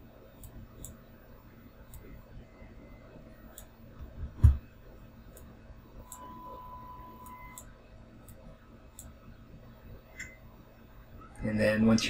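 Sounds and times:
low room noise: 0:00.0 - 0:12.0
computer mouse clicks: 0:00.4 - 0:01.0, 0:01.9 - 0:02.1, 0:03.5 - 0:03.7
faint high-pitched tone: 0:06.0 - 0:07.7, 0:10.1 - 0:11.5.

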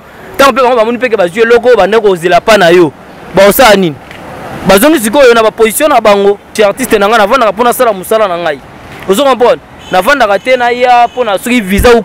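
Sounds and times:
man talking: 0:00.4 - 0:04.0, 0:04.6 - 0:12.0.

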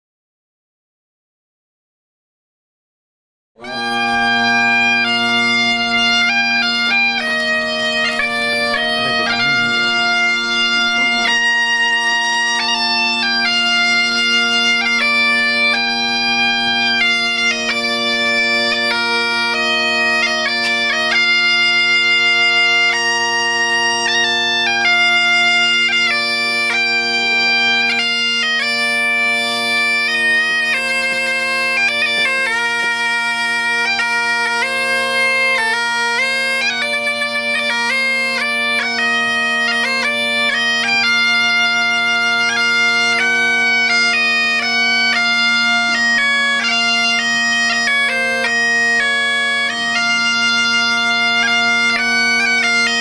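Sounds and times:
bagpipe drone: 0:03.6 - 0:53.0
bagpipe melody: 0:03.6 - 0:53.0.

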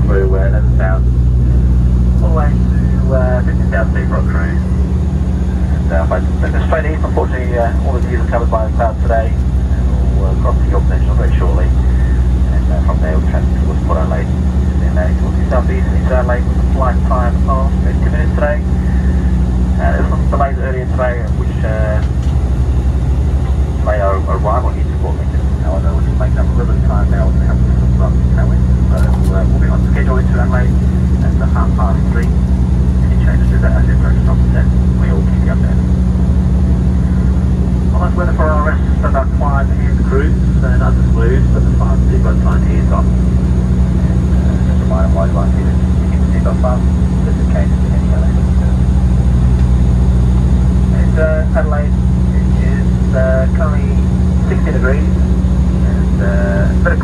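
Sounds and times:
airliner cabin engine drone: 0:00.0 - 0:57.0.

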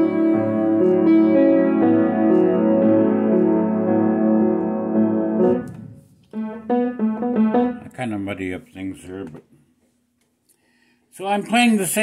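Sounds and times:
upright piano chords: 0:00.0 - 0:08.4.

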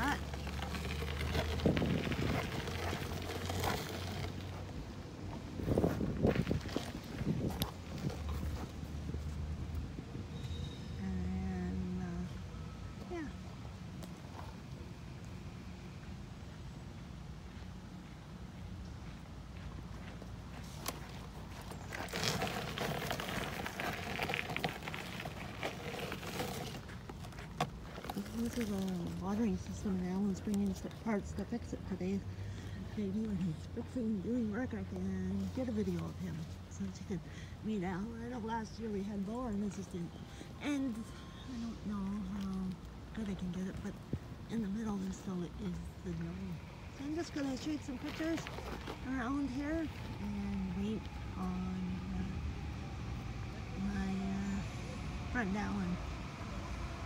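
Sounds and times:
steps on gravel: 0:00.0 - 0:09.3, 0:17.5 - 0:31.0, 0:47.0 - 0:50.4
wind on microphone: 0:01.5 - 0:02.9, 0:05.4 - 0:08.5.

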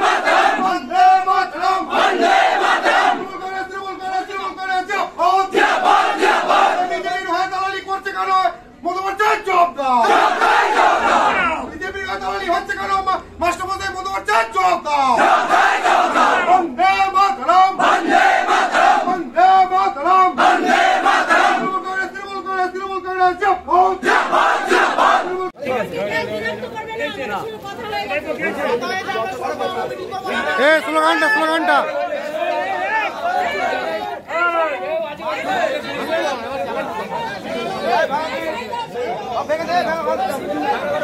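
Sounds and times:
crowd chanting in unison: 0:00.0 - 0:03.5, 0:05.4 - 0:07.1, 0:10.0 - 0:11.5, 0:15.1 - 0:16.6, 0:17.7 - 0:19.4, 0:20.3 - 0:21.7, 0:23.8 - 0:25.5, 0:31.6 - 0:34.3.

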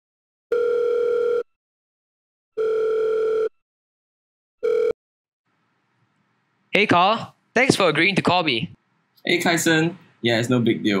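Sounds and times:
phone ringing tone beeps: 0:00.5 - 0:01.4, 0:02.6 - 0:03.5, 0:04.6 - 0:05.0.

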